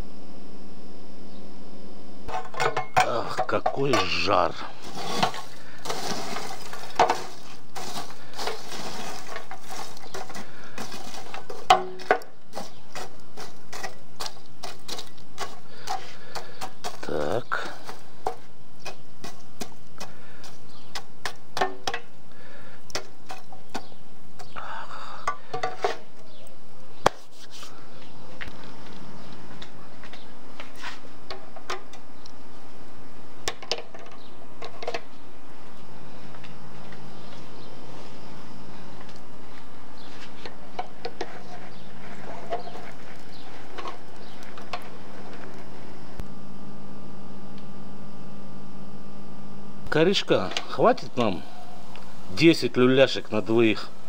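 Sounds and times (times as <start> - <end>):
charcoal coals clinking: 2.3 - 27.3, 39.0 - 45.7
metal rod scraping grill: 4.8 - 11.6.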